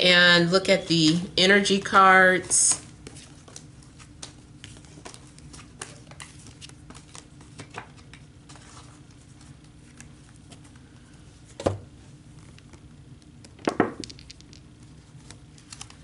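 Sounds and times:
cards shuffled by hand: 2.4s - 10.8s, 13.9s - 16.0s.

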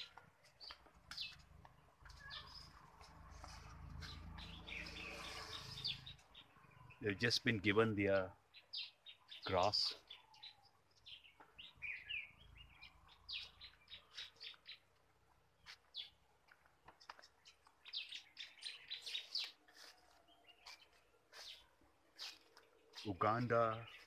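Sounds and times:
small birds chirping: 0.0s - 24.0s.

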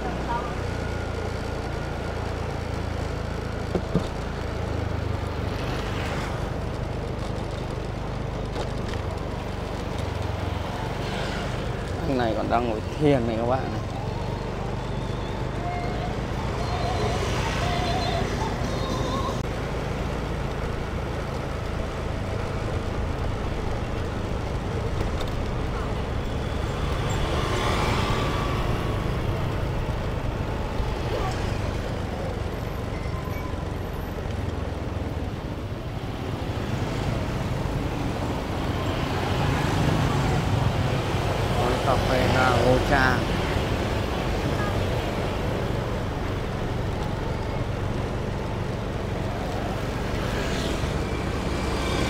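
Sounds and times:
low traffic rumble: 0.0s - 52.0s
motor scooters passing: 0.0s - 52.0s.

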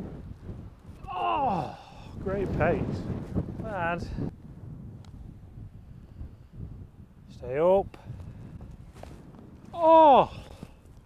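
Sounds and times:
wind rumble on microphone: 0.0s - 11.0s
man exclaiming oh: 1.0s - 2.1s, 9.7s - 10.5s.

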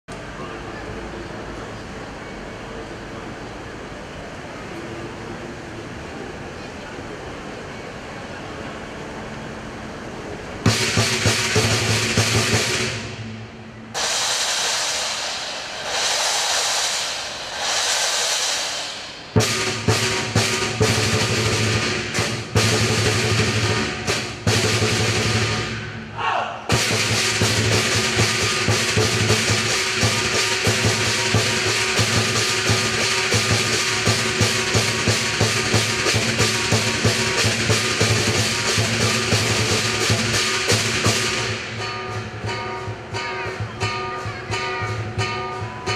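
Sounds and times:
large drum beating: 10.6s - 26.1s, 26.7s - 45.9s
cymbals clashing: 10.6s - 45.9s
gong: 10.7s - 26.1s, 26.7s - 45.9s.

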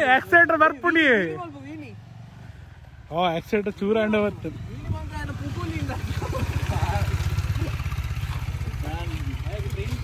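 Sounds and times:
motorcycle engine low rumble: 2.6s - 10.0s.

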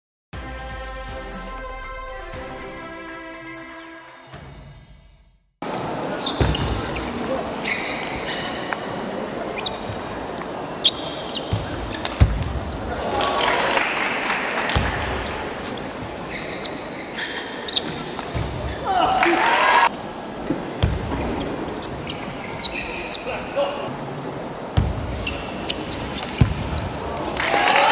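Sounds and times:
shoes squeaking on floor: 6.2s - 13.0s, 15.2s - 18.8s, 21.1s - 23.7s, 25.1s - 27.4s.

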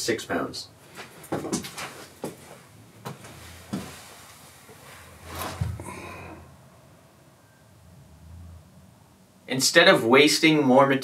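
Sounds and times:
light knocks and rubbing: 1.0s - 5.8s
scrape and low thump: 4.9s - 5.9s.

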